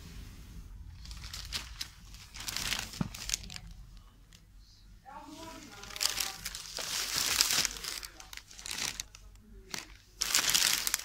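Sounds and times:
rustling and crinkling of material: 0.0 - 11.0.

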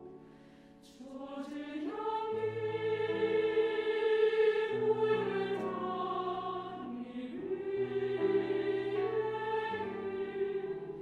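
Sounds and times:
grand piano: 0.0 - 11.0
women's choir singing: 0.8 - 11.0.

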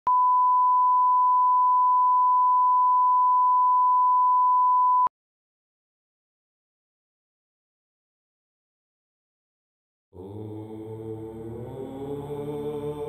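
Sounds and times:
steady test tone beep: 0.1 - 5.1.

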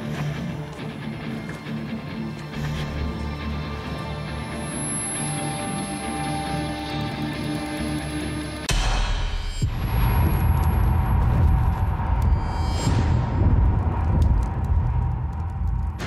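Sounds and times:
heavy low boom: 8.7 - 16.0
dense deep rumble: 9.6 - 16.0.

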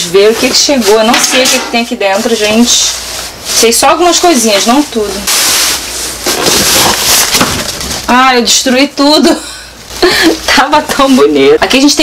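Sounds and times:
cardboard and tape ripping: 4.6 - 8.2.

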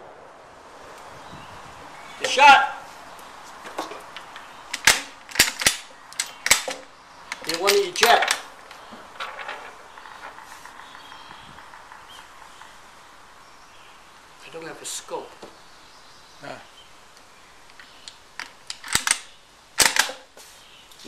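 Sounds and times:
rifle bolt clicking: 4.7 - 8.4, 17.7 - 19.2.

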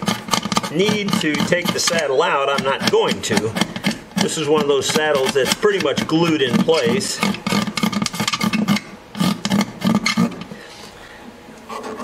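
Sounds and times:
tool scraping varnish off wood: 0.0 - 11.0.

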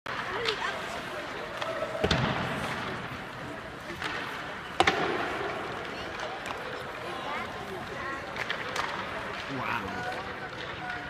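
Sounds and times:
hockey stick striking puck: 0.1 - 7.0, 7.8 - 11.0
puck cracking against something hard: 3.9 - 6.6.

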